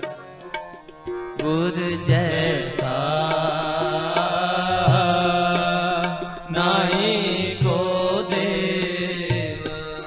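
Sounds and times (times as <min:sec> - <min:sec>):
harmonium chords: 0:00.0 - 0:10.0
person singing ornamented line: 0:00.0 - 0:10.0.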